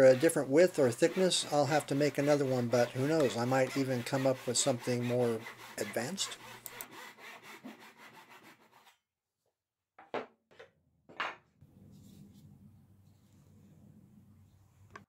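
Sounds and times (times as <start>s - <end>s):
short rubbing sounds: 0.0s - 8.8s
saw cutting wood: 0.0s - 8.9s.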